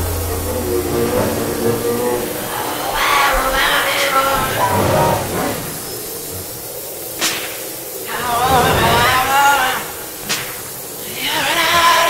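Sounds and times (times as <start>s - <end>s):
warbling pitched line: 0.0s - 6.1s
sharp crack: 7.1s - 11.0s.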